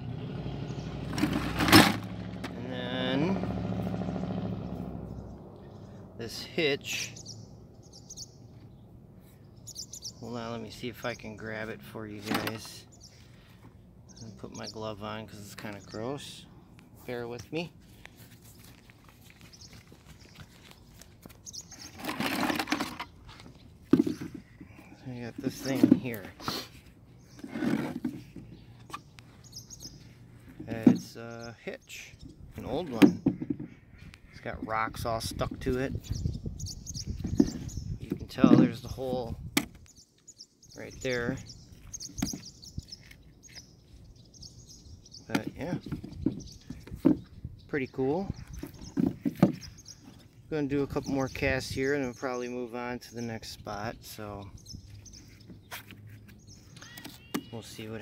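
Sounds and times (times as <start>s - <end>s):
birds chirping: 0.0s - 58.0s
outdoor background noise: 0.0s - 58.0s
faint bird chirp: 28.2s - 32.8s, 36.0s - 38.0s, 54.3s - 58.0s.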